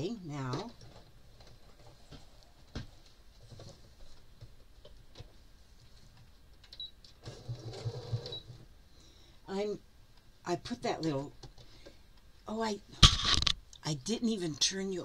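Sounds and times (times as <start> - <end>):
sewing machine stitching: 7.2 - 8.4.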